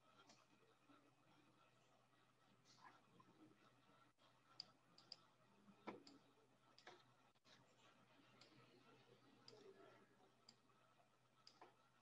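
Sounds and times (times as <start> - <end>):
faint computer mouse clicks: 4.6 - 5.2, 11.4 - 11.8.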